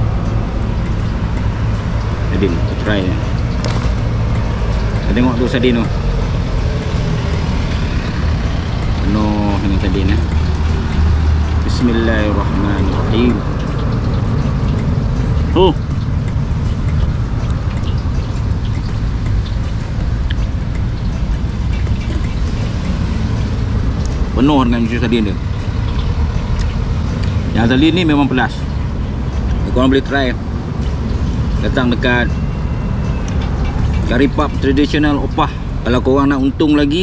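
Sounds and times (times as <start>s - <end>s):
low engine rumble: 0.0s - 37.0s.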